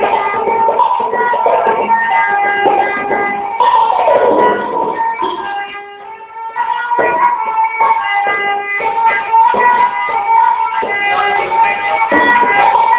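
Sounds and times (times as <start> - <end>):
plucked folk instrument strokes: 0.0 - 12.9.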